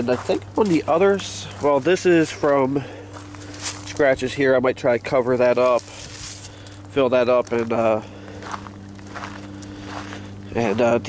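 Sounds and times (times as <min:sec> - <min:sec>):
footsteps on gravel: 0:00.0 - 0:11.0
steady low hum: 0:00.0 - 0:11.0.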